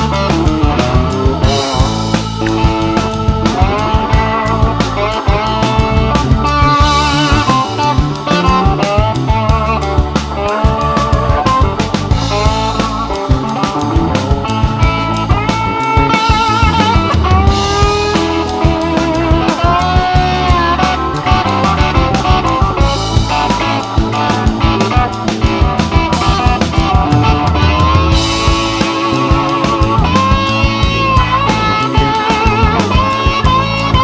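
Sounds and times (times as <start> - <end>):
drums and bass: 0.0 - 34.0
lead guitar with sliding bends: 0.0 - 34.0.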